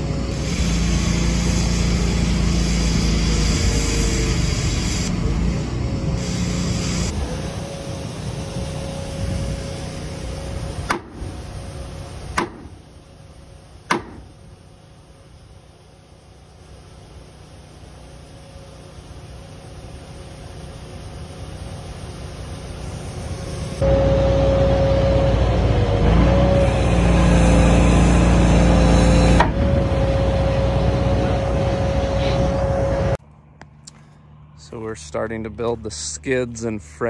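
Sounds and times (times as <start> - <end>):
steady whine: 0.0 - 37.0
vehicle engine running: 0.0 - 37.0.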